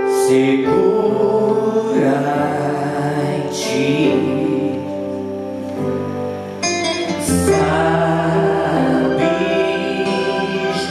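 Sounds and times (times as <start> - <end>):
man singing gospel song: 0.0 - 5.0, 7.3 - 10.9
musical accompaniment: 0.0 - 10.9.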